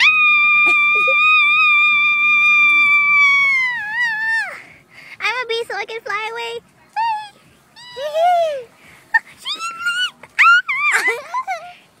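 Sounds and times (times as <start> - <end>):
child squealing: 0.0 - 4.6, 7.0 - 8.7, 9.4 - 11.7.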